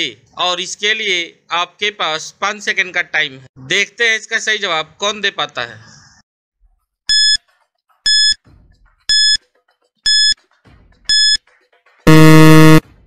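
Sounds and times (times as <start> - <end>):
short high beeps: 7.1 - 7.4, 8.1 - 8.4, 9.1 - 9.4, 10.1 - 10.4, 11.1 - 11.4, 12.1 - 12.8
low-pitched buzzer: 12.1 - 12.8.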